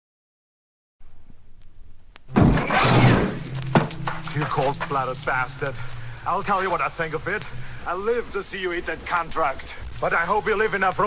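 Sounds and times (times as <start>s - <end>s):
low hum: 1.0s - 11.0s
loud crash: 2.3s - 5.2s
man speaking: 4.2s - 11.0s
faint hiss: 5.0s - 11.0s.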